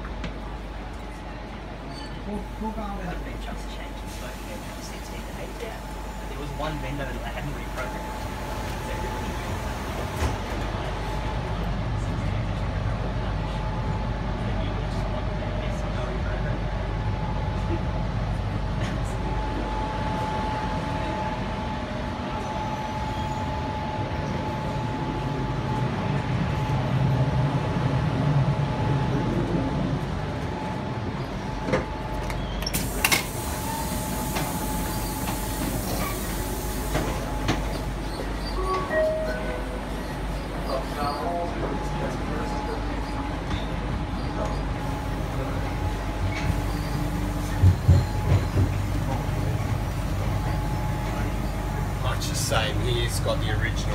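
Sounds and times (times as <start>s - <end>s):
train carriage rumble: 0.0s - 53.9s
hiss: 32.6s - 37.9s.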